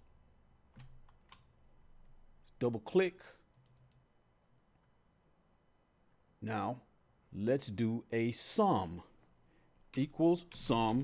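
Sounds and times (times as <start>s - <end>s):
computer mouse clicks: 3.5s - 4.1s.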